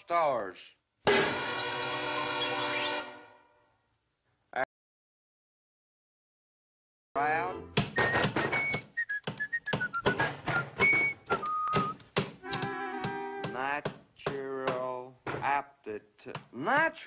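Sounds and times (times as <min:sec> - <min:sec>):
rapid knocks and clicks: 0:07.8 - 0:15.5
whistle-like tones: 0:07.9 - 0:12.7.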